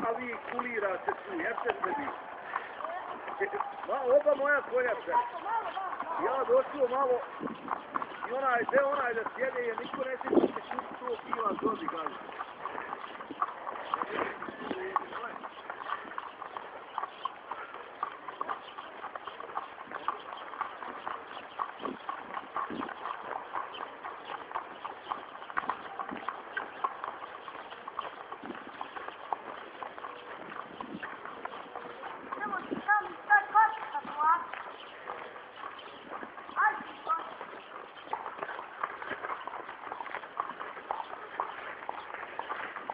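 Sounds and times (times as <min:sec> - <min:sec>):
hooves clip-clopping on concrete: 0:00.0 - 0:42.9.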